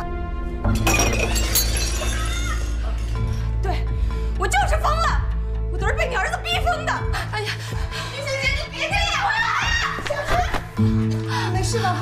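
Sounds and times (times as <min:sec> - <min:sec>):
background music: 0:00.0 - 0:12.0
ringing of scattering pieces: 0:00.8 - 0:02.6
breakable object shattering: 0:00.8 - 0:02.7.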